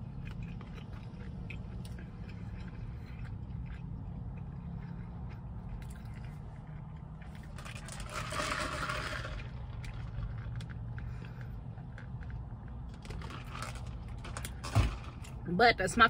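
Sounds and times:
person chewing: 0.0 - 8.3
steady low hum: 0.0 - 16.0.

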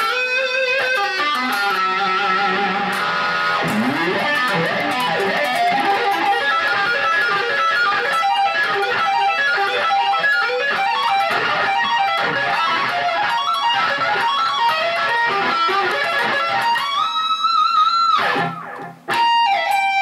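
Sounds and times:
electric guitar fast lead line: 0.0 - 19.5.

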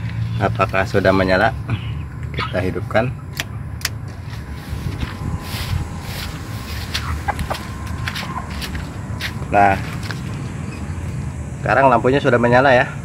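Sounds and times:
steady low rumble: 0.0 - 13.0.

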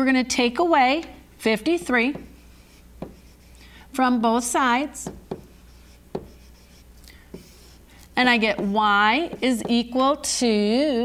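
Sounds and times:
low steady hum: 0.0 - 11.0
pen writing on whiteboard: 1.7 - 3.6, 4.9 - 10.0.

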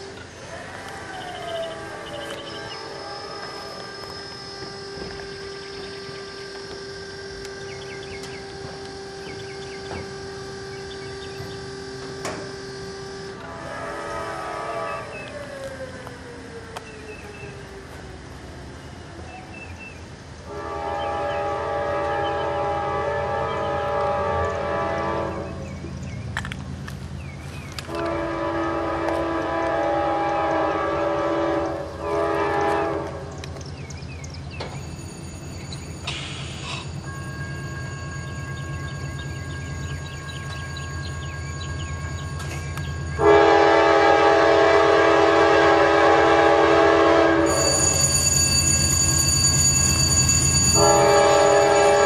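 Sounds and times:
whining tones with falling pitch: 0.0 - 19.5
diesel locomotive machinery hum: 0.0 - 52.0.

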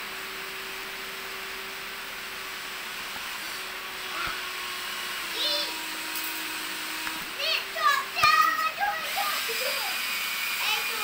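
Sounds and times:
small electric motor whirring: 0.0 - 11.0.

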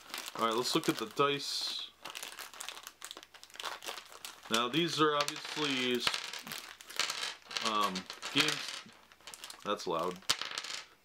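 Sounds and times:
plastic bag crinkling: 0.0 - 10.2.

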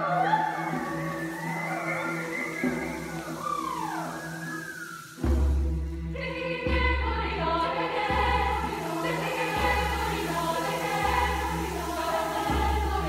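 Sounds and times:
mixed choir singing: 0.0 - 4.4, 6.1 - 13.0.

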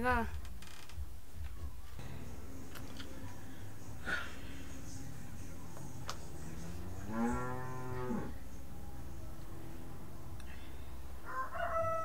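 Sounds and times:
cow mooing: 6.7 - 8.4.

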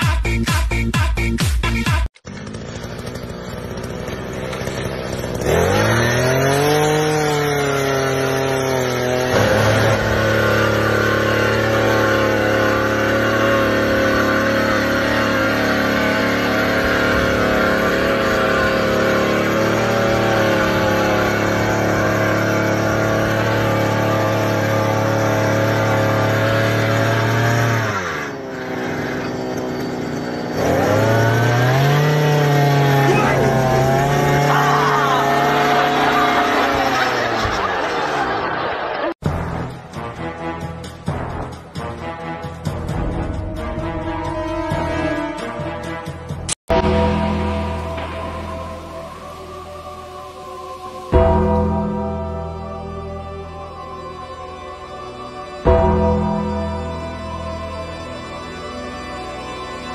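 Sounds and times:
small engine revving: 1.2 - 38.9.

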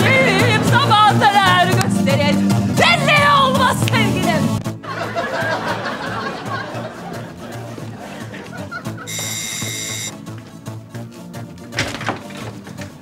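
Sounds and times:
electric doorbell ringing: 9.1 - 10.1.

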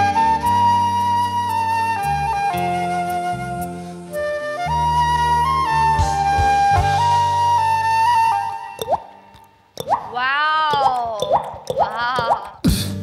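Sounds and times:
flute playing slow melody: 0.0 - 9.3.

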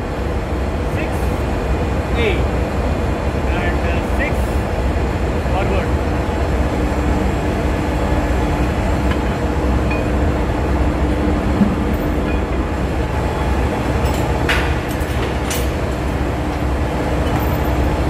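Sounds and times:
engine room machinery drone: 0.0 - 18.0.

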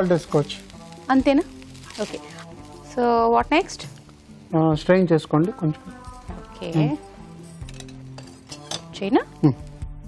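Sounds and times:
soft background music: 0.0 - 10.0
utensils clinking against pans: 7.6 - 9.0.

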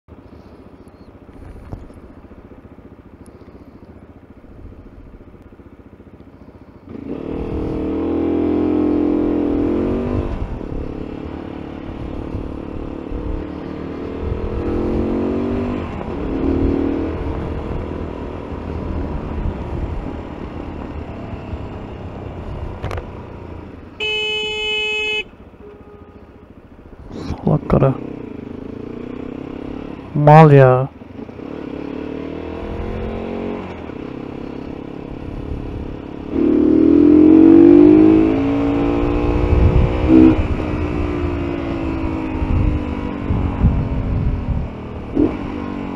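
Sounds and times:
motorcycle engine accelerating: 0.2 - 45.9
vehicle horn blaring: 24.0 - 26.4.

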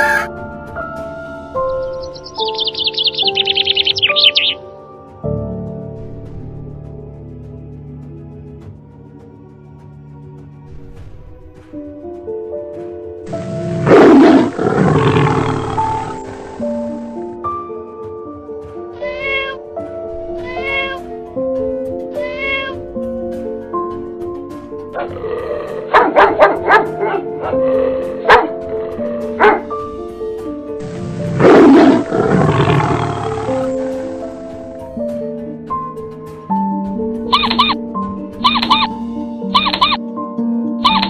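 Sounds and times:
background music with held notes: 0.0 - 41.0
tiger roaring and snarling: 13.3 - 17.0, 25.0 - 29.7, 30.8 - 34.6.

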